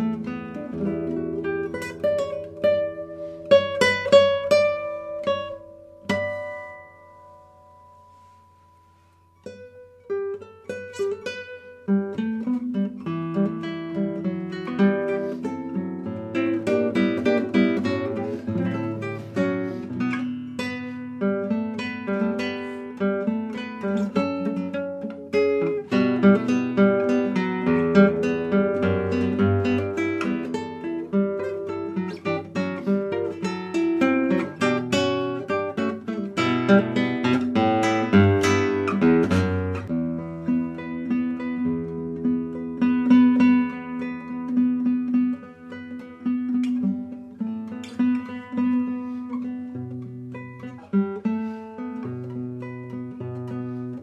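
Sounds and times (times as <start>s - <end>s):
solo guitar playing: 0.0s - 54.0s.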